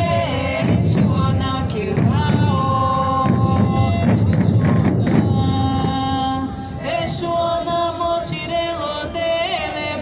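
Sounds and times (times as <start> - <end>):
loud drum ensemble: 0.0 - 6.5
voices singing together: 0.0 - 10.0.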